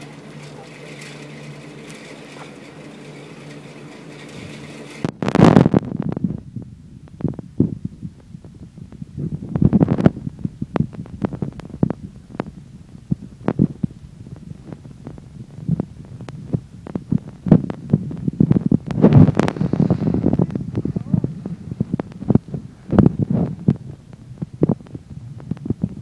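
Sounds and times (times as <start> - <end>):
wind buffeting microphone: 4.2 - 26.0
hissing gust of wind: 19.0 - 23.6.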